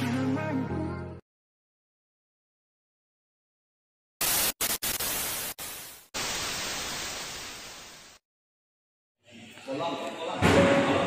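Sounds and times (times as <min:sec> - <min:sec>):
television static hiss: 0:04.2 - 0:08.2.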